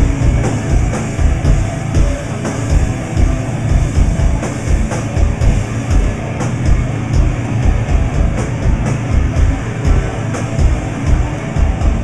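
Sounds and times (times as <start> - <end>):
distorted guitars and bass: 0.0 - 12.0
drums pounding low beat: 0.0 - 12.0.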